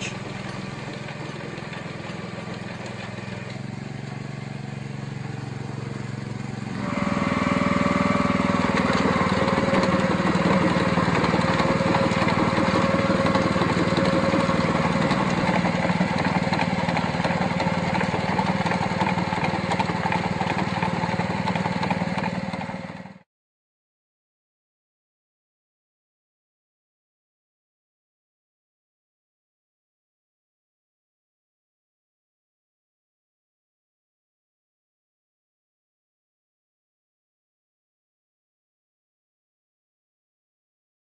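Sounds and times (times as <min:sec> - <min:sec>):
lawn aerator engine running: 0:00.0 - 0:23.2.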